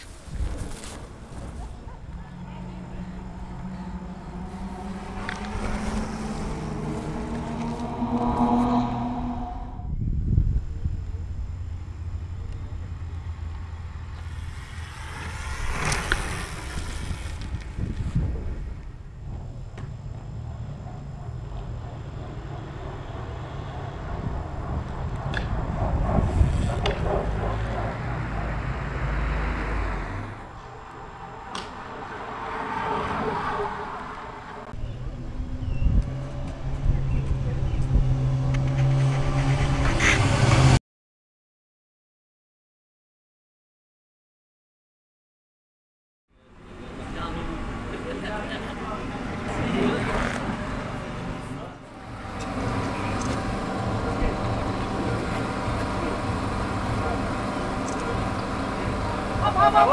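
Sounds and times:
vehicles passing on road: 0:00.0 - 0:40.8, 0:46.4 - 0:59.9.

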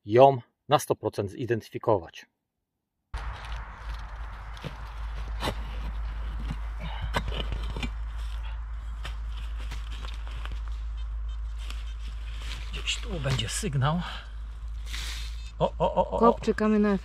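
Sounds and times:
scraping and rustling leaves: 0:03.2 - 0:15.6.

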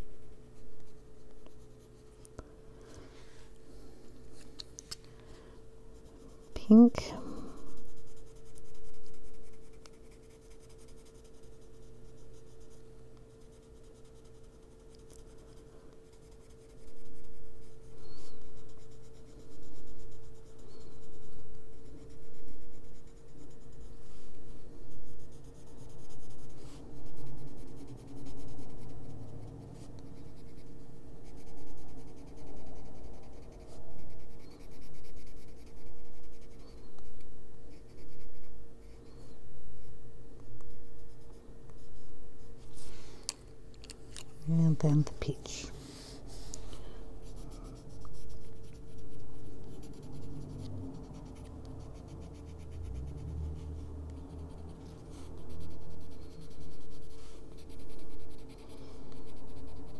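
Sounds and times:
pencil scratching on paper: 0:00.5 - 0:02.2, 0:05.9 - 0:39.2, 0:40.7 - 0:42.5, 0:47.2 - 0:59.9.

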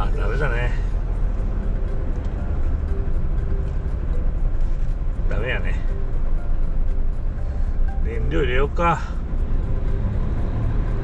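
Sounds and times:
diesel truck engine rumbling: 0:00.0 - 0:11.0.

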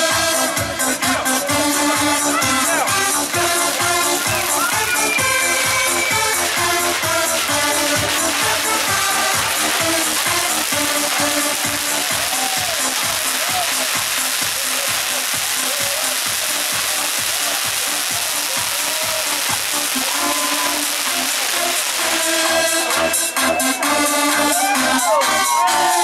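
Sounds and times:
electronic dance music: 0:00.0 - 0:26.0
firework fountain hissing: 0:01.6 - 0:24.1.

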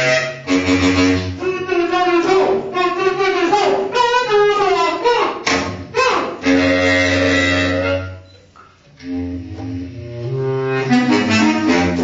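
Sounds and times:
bass clarinet long notes: 0:00.0 - 0:08.2, 0:09.0 - 0:12.0.

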